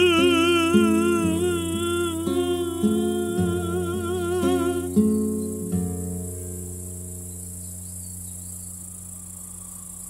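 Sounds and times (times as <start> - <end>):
wordless vocal note with vibrato: 0.0 - 5.0
acoustic guitar picking: 0.0 - 8.3.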